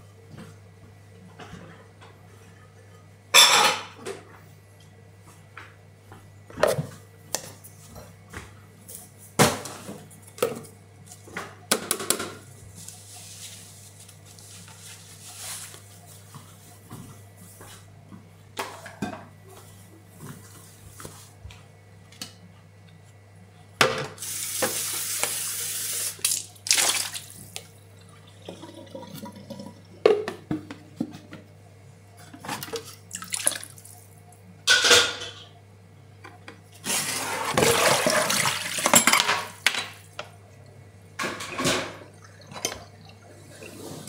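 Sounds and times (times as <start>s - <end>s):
dishes clinking: 3.3s - 4.0s, 34.7s - 35.6s
water running: 24.2s - 30.5s, 32.5s - 34.4s, 36.8s - 40.6s, 41.4s - 44.0s
water splashing: 26.2s - 27.6s.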